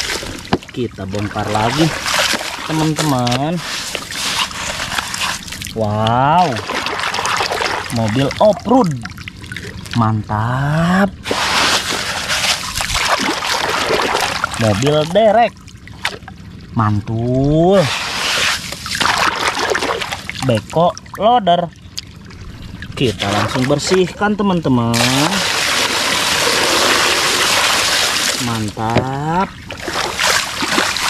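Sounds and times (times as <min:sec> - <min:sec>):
muddy water splashing and sloshing: 0:00.0 - 0:31.0.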